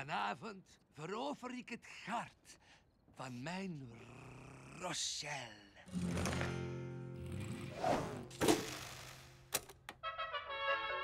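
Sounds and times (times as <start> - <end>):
brass-led music: 10.0 - 11.0.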